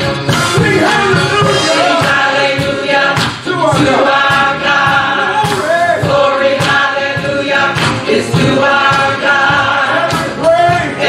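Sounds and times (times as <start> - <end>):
choir singing gospel: 0.0 - 11.0
steady beat: 0.0 - 11.0.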